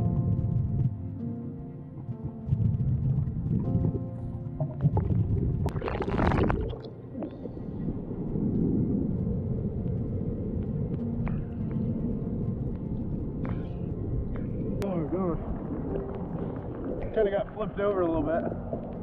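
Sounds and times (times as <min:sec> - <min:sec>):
background music: 0:00.0 - 0:19.0
muffled underwater rumble: 0:00.0 - 0:19.0.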